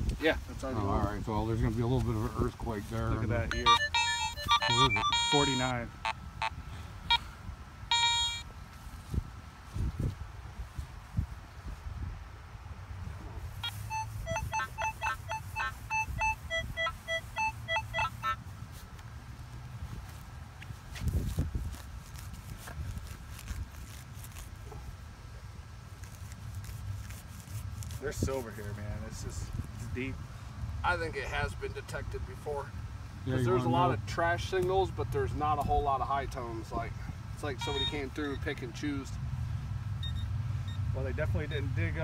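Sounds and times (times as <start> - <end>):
metal detector beeping: 3.5 - 7.2, 7.9 - 8.5, 13.6 - 18.4, 37.6 - 38.6, 40.0 - 40.8.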